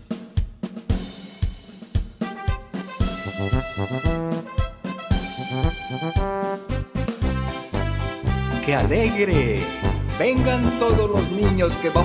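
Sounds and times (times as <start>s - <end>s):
cymbal and hi-hat: 0.0s - 2.9s
bass drum and snare strokes: 0.0s - 11.6s.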